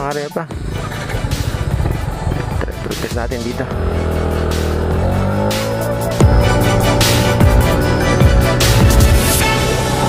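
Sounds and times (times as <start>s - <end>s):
electronic background music: 0.0s - 10.0s
scooter accelerating: 0.5s - 10.0s.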